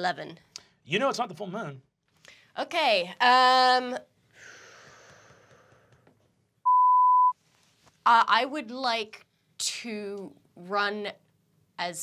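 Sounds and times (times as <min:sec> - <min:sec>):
censor beep: 0:06.6 - 0:07.4.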